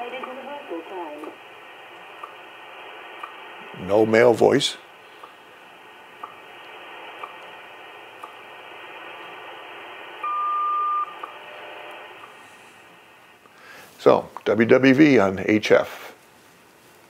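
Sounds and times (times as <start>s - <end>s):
faint time signal ticks: 0.0s - 2.4s, 3.2s - 3.4s, 5.2s - 5.4s, 6.2s - 7.5s
radio band hiss: 0.0s - 10.4s, 11.0s - 16.2s
clear beep: 10.2s - 11.4s.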